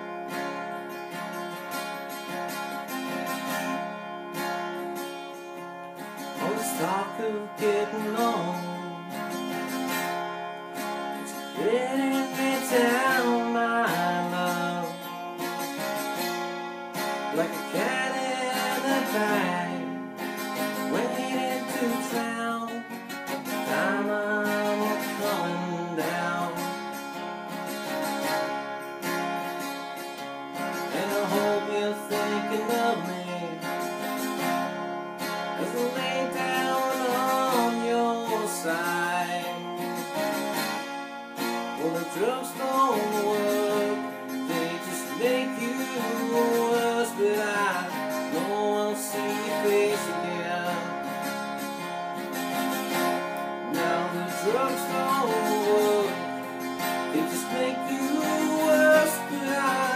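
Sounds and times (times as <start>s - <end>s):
acoustic guitar strumming: 0.0s - 59.9s
man singing: 6.2s - 10.1s, 10.8s - 15.7s, 17.0s - 27.3s, 30.6s - 34.5s, 35.2s - 40.6s, 41.4s - 51.8s, 52.5s - 59.9s.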